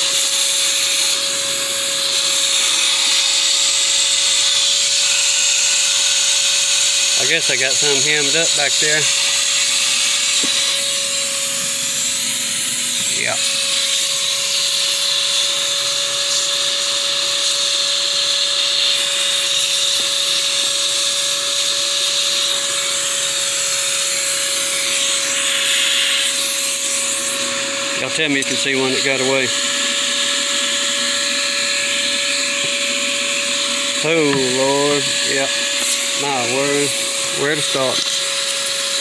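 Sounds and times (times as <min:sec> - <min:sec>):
small vacuum whining: 0:00.0 - 0:39.0.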